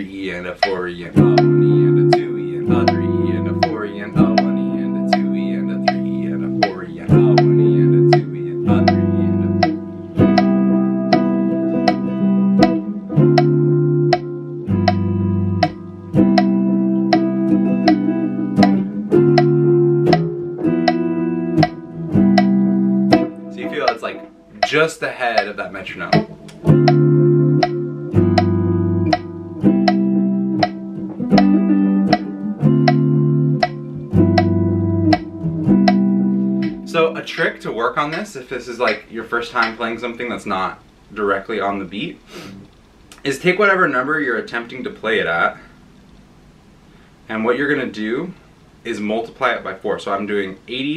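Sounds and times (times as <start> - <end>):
electric guitar strumming chords: 0.0 - 39.0
metronome clicking: 0.0 - 40.3.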